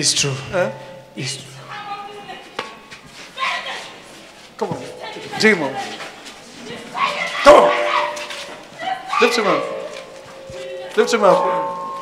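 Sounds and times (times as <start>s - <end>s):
man shouting into microphone: 7.4s - 8.2s, 9.1s - 9.8s.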